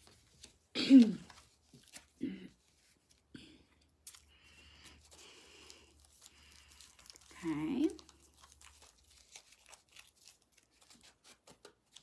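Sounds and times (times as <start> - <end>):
cards rustling: 0.0 - 12.0.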